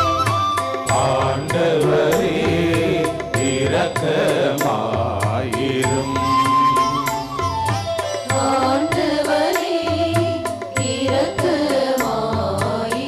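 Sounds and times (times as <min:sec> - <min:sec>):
held instrument melody: 0:00.0 - 0:02.4, 0:05.9 - 0:09.5
steady percussion beat: 0:00.0 - 0:13.0.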